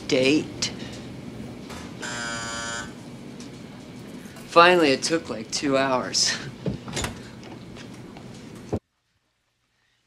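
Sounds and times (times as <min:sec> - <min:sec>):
machine buzzer: 0:02.0 - 0:03.0.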